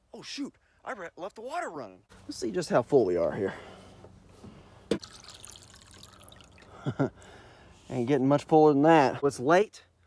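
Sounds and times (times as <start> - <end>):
water pouring into plastic tank: 4.9 - 6.8.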